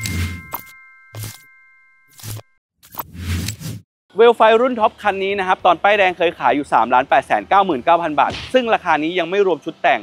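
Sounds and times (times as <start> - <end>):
bell-like chime: 0.0 - 2.2
swooshing hits with low thumps: 8.3 - 8.6.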